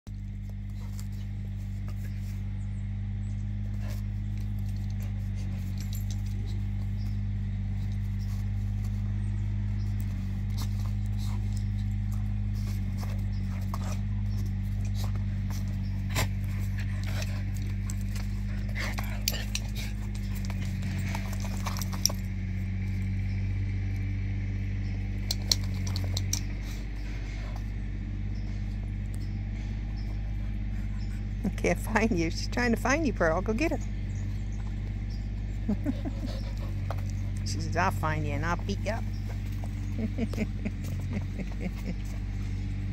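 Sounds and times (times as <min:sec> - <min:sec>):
steady low hum: 0:00.1 - 0:42.9
dogs scuffling: 0:03.4 - 0:22.4
dogs growling: 0:10.0 - 0:22.4, 0:34.0 - 0:42.9.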